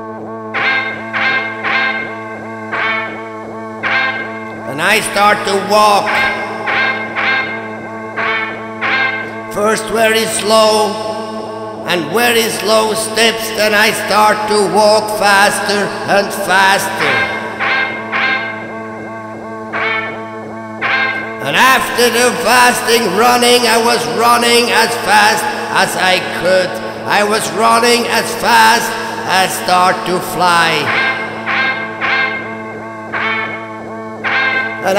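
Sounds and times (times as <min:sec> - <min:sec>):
distorted electric guitar drone: 0:00.0 - 0:34.9.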